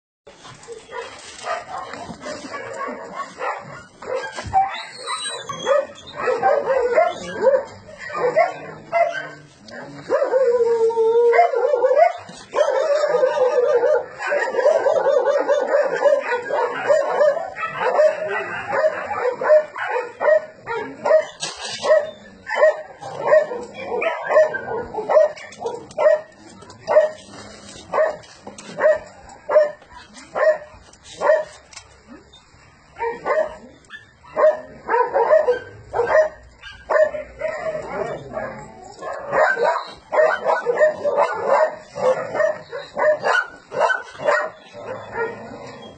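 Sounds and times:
dogs barking and yipping: 0.4 - 31.8, 32.6 - 45.9.

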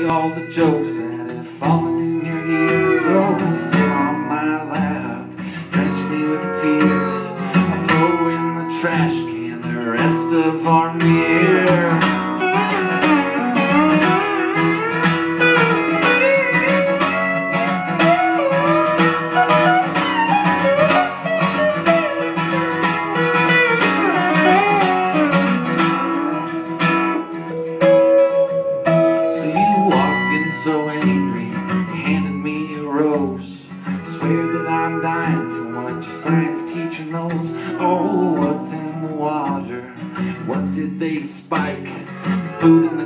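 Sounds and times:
steel guitar sliding melody: 0.0 - 40.6, 42.0 - 43.0
acoustic guitar strumming chords: 0.0 - 43.0.

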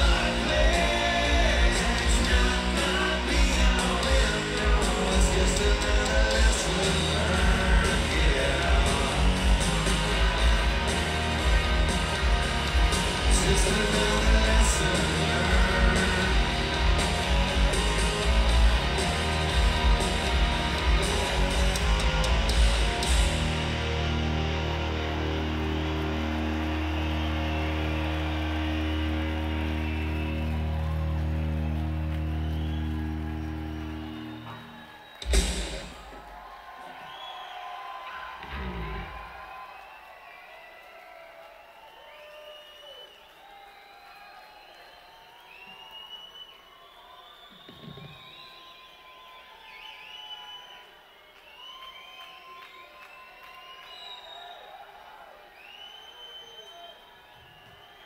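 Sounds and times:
rock band guitar chord: 0.0 - 34.4
crowd cheering and whistling: 0.0 - 58.0.

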